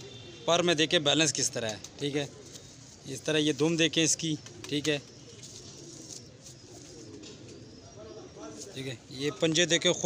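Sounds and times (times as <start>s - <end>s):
pigeons cooing: 1.9s - 10.0s.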